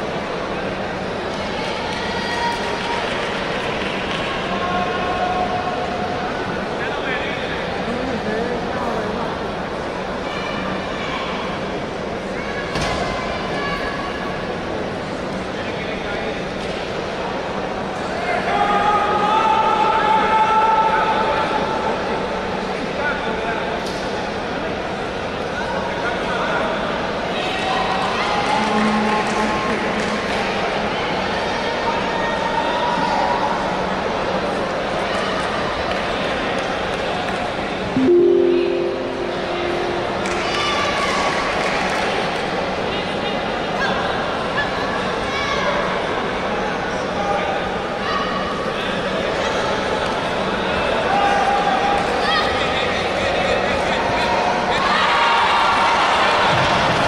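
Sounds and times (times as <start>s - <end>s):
crowd murmur: 0.0s - 12.6s, 38.0s - 41.6s.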